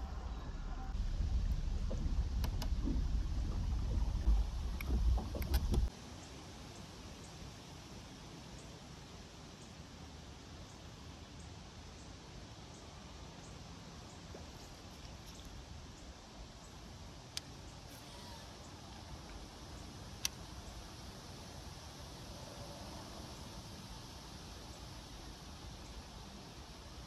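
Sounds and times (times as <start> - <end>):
low rumble: 0.0 - 5.9
wind buffeting microphone: 0.0 - 5.9.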